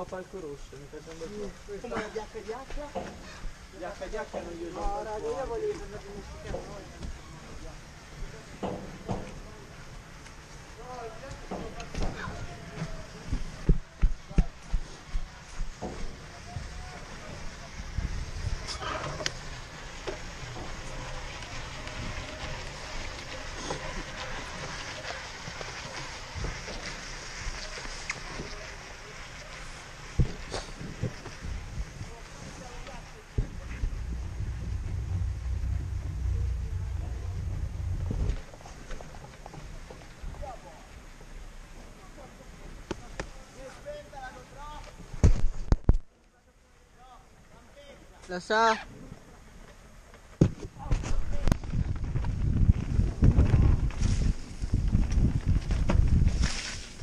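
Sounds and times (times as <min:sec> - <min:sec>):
chairlift running noise: 0:00.0 - 0:45.1
low rumble: 0:31.5 - 0:39.9.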